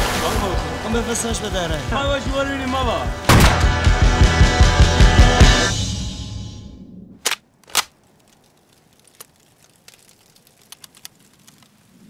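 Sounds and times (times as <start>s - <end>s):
fire pops and snaps: 7.2s - 12.0s
wood fire crackling: 7.4s - 12.0s.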